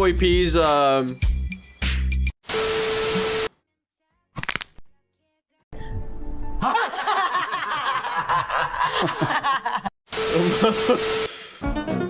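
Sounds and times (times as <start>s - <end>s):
people laughing: 6.6s - 11.1s.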